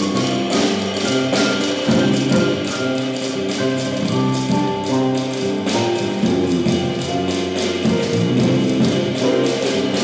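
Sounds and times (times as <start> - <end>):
drums cymbal pattern: 0.0 - 10.0
piano chords: 0.0 - 10.0
walking bass: 0.0 - 10.0.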